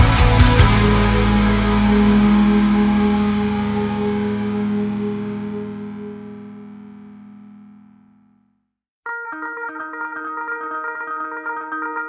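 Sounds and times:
distorted electric guitar chord ringing: 0.0s - 8.3s, 9.1s - 12.0s.

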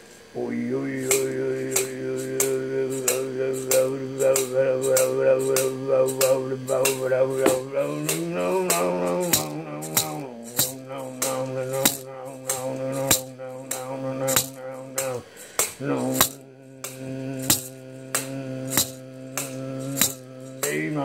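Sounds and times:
held droning tone: 0.0s - 21.0s
shaker struck in steady pulse: 0.0s - 21.0s.

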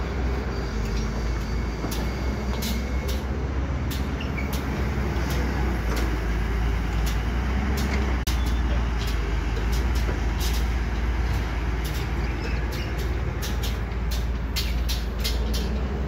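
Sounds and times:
excavator diesel engine running: 0.0s - 16.0s.

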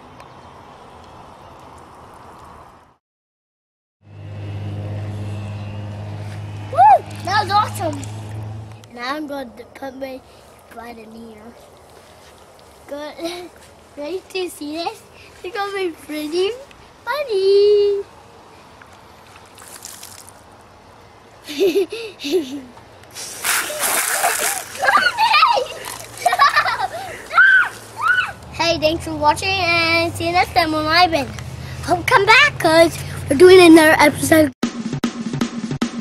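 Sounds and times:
low motor hum: 4.0s - 8.9s
child shouting: 6.7s - 8.0s, 24.2s - 25.9s, 27.1s - 28.9s
water sloshing in bucket: 19.3s - 20.4s, 23.2s - 26.6s.

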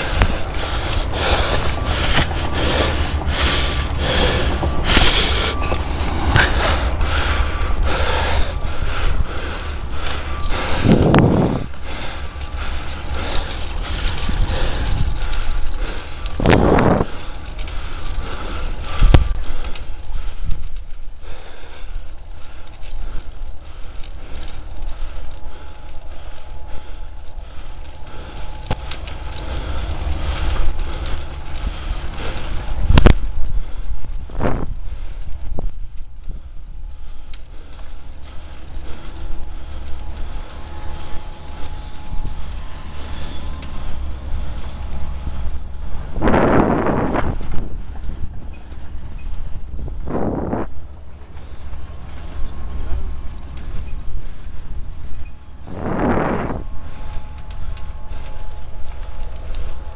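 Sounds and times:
rush of noise: 0.0s - 20.6s, 21.8s - 35.5s, 38.3s - 49.2s, 49.8s - 51.0s, 51.6s - 59.9s
bicycle rattling and knocking: 0.0s - 59.9s
wind rumble on microphone: 0.0s - 59.9s.

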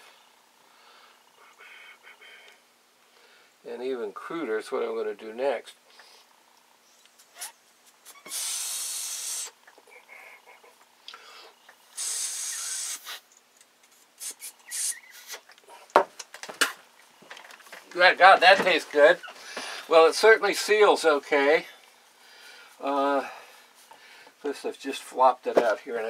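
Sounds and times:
air hissing through valve: 8.1s - 9.6s, 11.9s - 13.4s, 14.2s - 15.5s.

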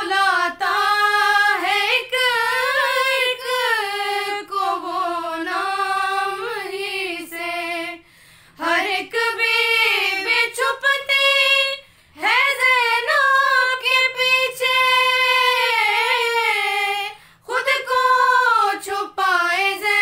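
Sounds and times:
women singing a lament: 0.0s - 20.0s.

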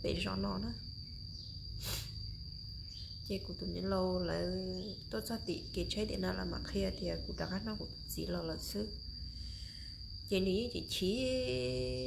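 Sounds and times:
high-pitched insect trill: 0.0s - 12.0s
short breath-like hiss: 1.8s - 2.2s.

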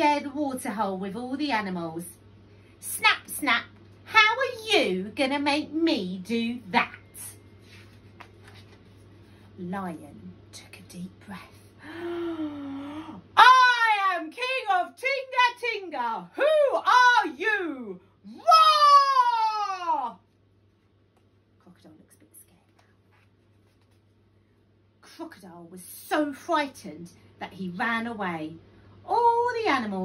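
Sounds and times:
low steady hum: 0.0s - 30.0s
book page turning rustle: 7.5s - 9.3s, 22.6s - 24.2s
woman shouting: 13.3s - 20.2s.

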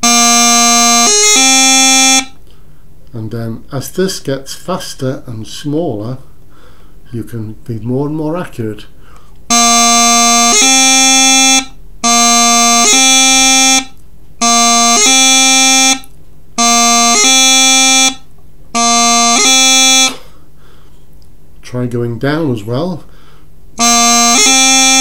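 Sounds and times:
practice chanter playing notes: 0.0s - 2.3s, 9.5s - 20.3s, 23.8s - 25.0s.

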